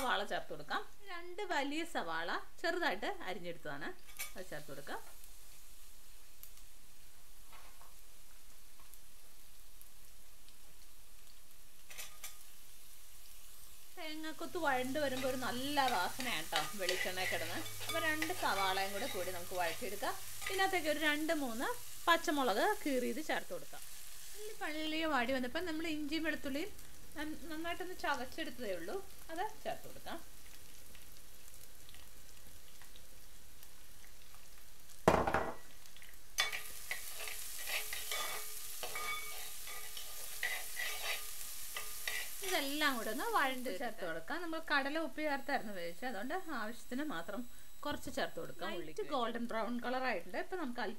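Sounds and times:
onions sizzling in a frying pan: 0.0 - 50.9
spoon scraping a pan: 11.8 - 12.5, 14.8 - 20.9, 36.4 - 43.2
spoon clinking against pan: 38.0 - 40.6.

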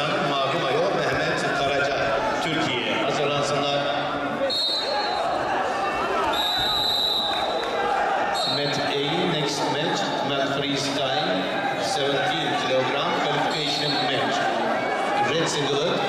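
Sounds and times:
referee's whistle blasts: 4.4 - 5.2, 6.3 - 7.6, 8.3 - 8.9
babble of voices: 7.7 - 16.0.

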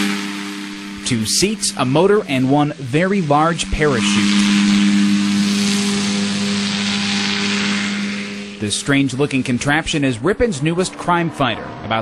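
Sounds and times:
powered parachute engine drone: 0.0 - 12.0.

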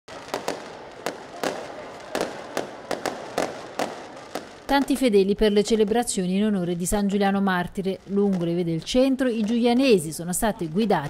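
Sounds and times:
fireworks exploding: 0.1 - 10.8.

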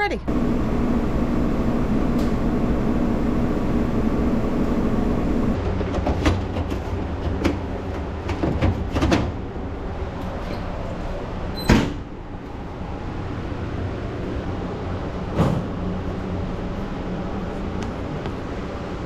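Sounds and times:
laundry machines rumbling: 0.0 - 19.0
washing machine spin cycle hum: 0.0 - 19.0
dryer door opening: 11.5 - 12.1, 15.3 - 15.8.

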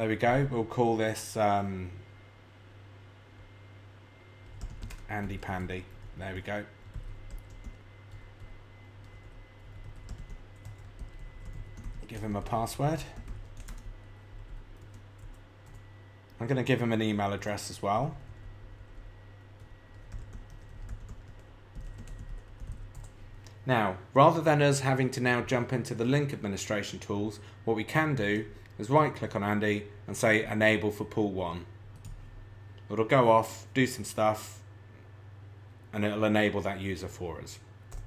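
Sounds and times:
low steady hum: 0.0 - 38.0
computer keyboard typing: 4.4 - 15.9, 18.2 - 23.3, 32.0 - 32.2.

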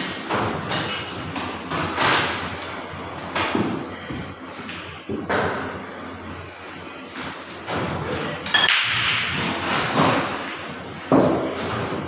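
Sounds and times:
pool balls scattering: 7.1 - 12.0.

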